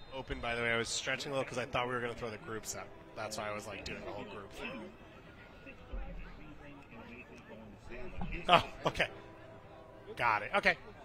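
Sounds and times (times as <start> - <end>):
faint low conversation: 0.3 - 11.0.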